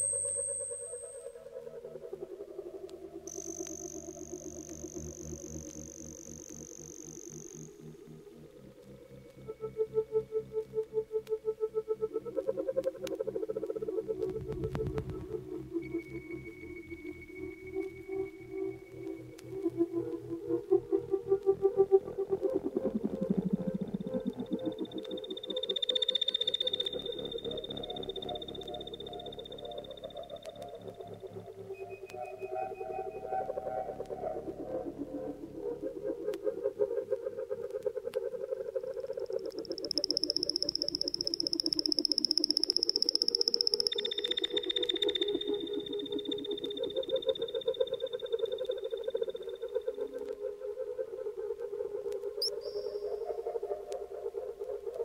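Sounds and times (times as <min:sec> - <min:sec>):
high whistling tones: 0:24.2 - 0:31.2, 0:39.6 - 0:49.8, 0:52.4 - 0:53.2.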